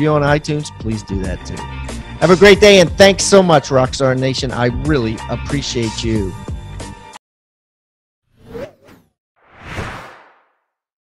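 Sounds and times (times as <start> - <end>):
whoosh sound effects: 8.4 - 10.6.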